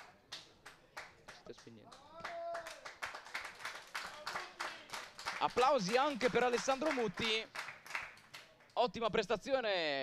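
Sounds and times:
spectators clapping: 0.0 - 8.8.

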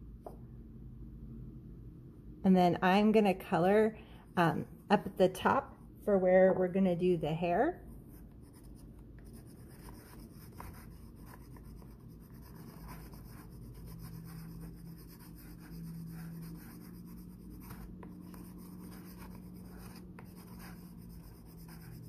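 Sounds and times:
low steady hum: 0.0 - 22.0
crayon scribbling on cardboard: 8.4 - 22.0.

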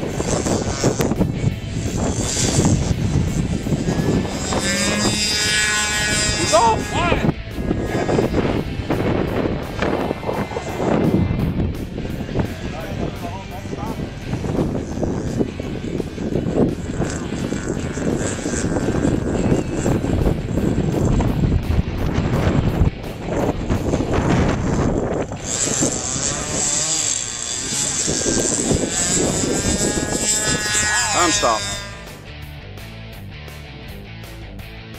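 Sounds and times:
model airplane motor and propeller: 0.0 - 32.4
high steady whine: 0.0 - 34.7.

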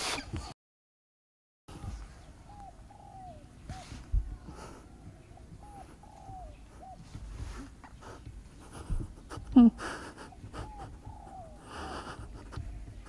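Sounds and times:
bird calling faintly: 1.7 - 13.0.

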